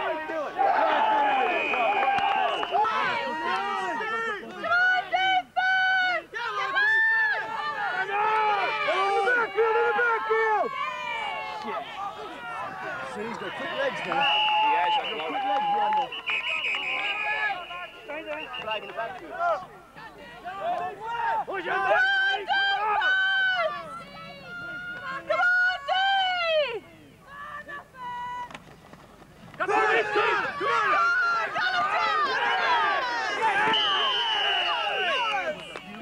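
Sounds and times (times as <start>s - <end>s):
spectators shouting and cheering: 0.0s - 28.6s, 29.5s - 36.0s.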